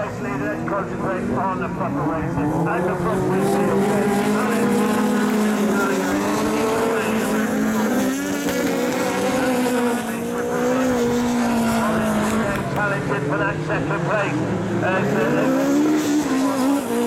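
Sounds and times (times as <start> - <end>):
racing buggy engines: 0.0 - 17.0.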